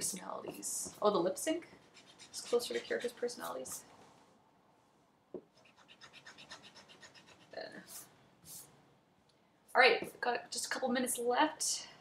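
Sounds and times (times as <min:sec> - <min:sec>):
pencil sketching on paper: 0:05.6 - 0:08.1.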